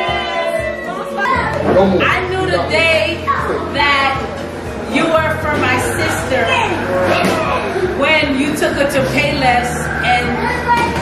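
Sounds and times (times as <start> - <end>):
voices talking in a room: 0.0 - 11.0
woman's voice: 4.9 - 6.8, 7.9 - 10.6.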